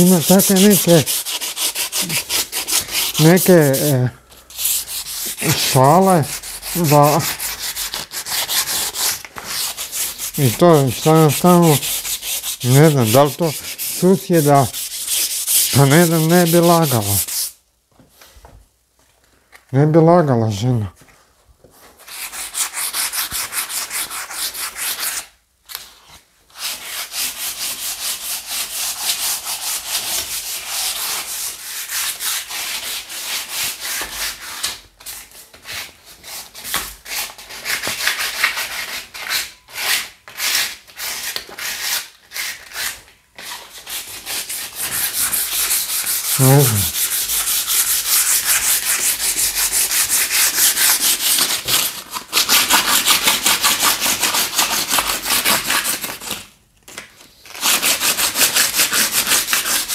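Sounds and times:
hand sanding wood: 0.0 - 17.6, 22.0 - 25.2, 26.6 - 34.8, 35.6 - 56.4, 57.6 - 59.9.

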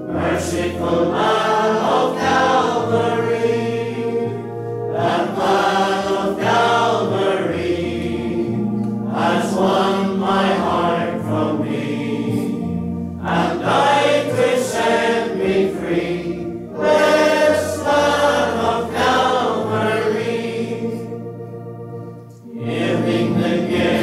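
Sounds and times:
congregation singing a hymn: 0.0 - 24.0
organ sustained low notes: 0.0 - 24.0.

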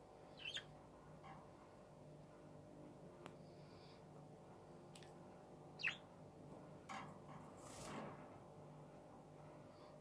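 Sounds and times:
budgerigar chirp: 0.4 - 0.7, 5.8 - 6.0.

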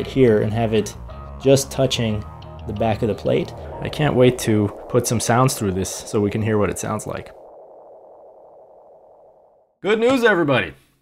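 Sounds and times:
man's voice: 0.0 - 7.2
soft hazy tone: 1.8 - 9.8.

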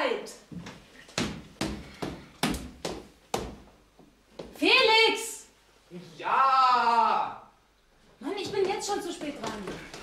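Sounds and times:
footsteps on staircase: 0.5 - 4.6, 8.1 - 10.0.

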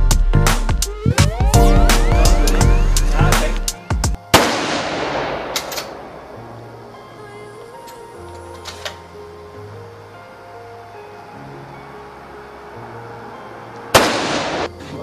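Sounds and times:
background music low notes: 0.0 - 15.0
loud gunshot: 4.3 - 6.2, 14.0 - 14.7.

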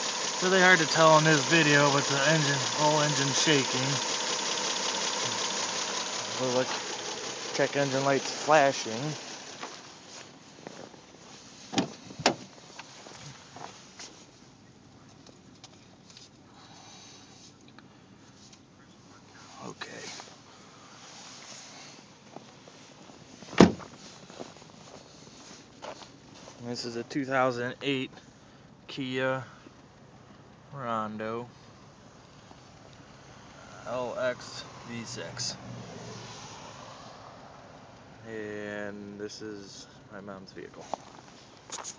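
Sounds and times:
car engine rough idle: 0.0 - 15.6
car door knocks: 23.6 - 23.9.

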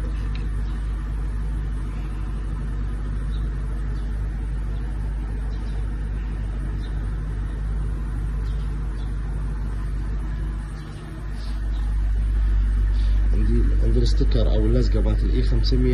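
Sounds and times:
car engine idling: 0.0 - 15.9.

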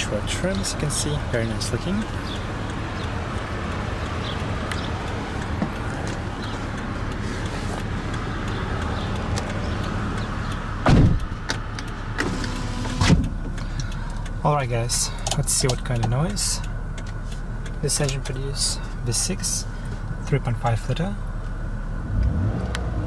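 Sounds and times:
heavy thumps: 10.8 - 11.6
power window motor: 12.2 - 13.2.

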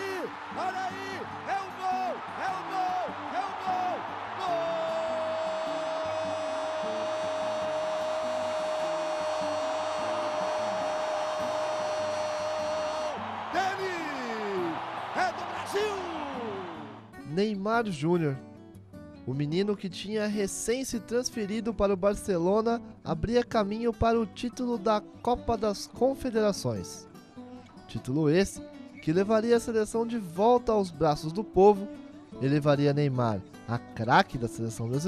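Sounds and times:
commentator shouting excitedly: 0.0 - 16.8
commentator's long held goal call: 0.0 - 17.0
stadium crowd noise: 0.0 - 17.2.

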